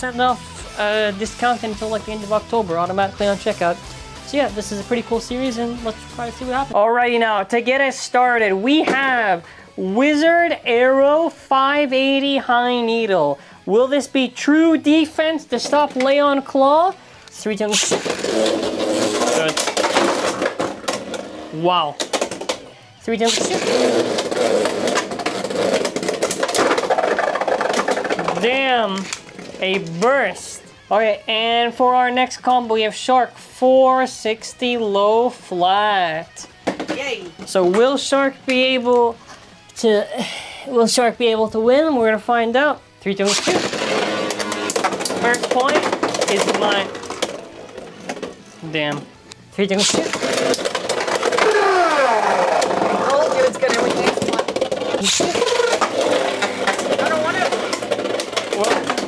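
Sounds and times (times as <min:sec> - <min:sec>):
spinning tops whirring on plastic: 0:17.7 - 0:21.4, 0:22.0 - 0:30.5, 0:43.2 - 0:48.7, 0:49.8 - 0:59.0
spinning top bursting apart: 0:43.2 - 0:48.3.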